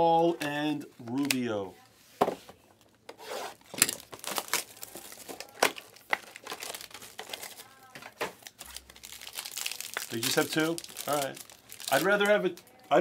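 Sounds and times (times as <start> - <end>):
foil packaging crinkling: 2.9 - 12.8
foil packaging tearing: 3.5 - 7.8, 8.4 - 12.5.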